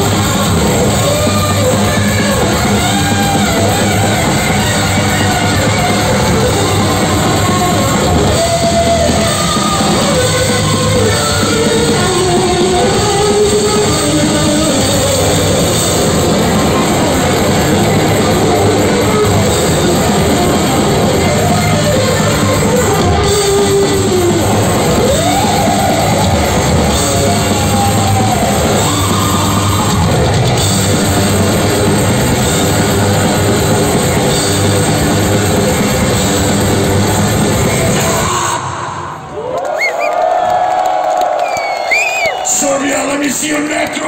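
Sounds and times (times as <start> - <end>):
heavy metal band playing live: 0.0 - 39.3
crowd cheering and whistling: 0.0 - 44.0.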